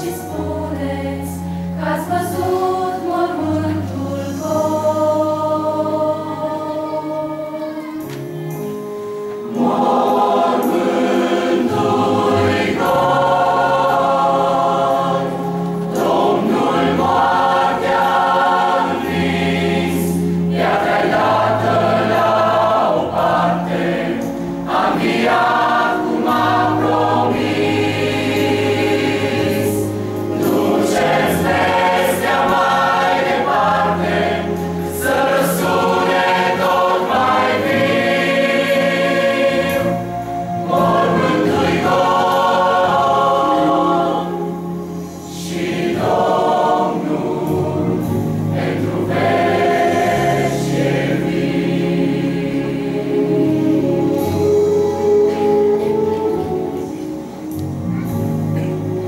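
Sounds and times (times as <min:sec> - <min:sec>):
mixed choir singing a hymn: 0:00.0 - 0:59.0.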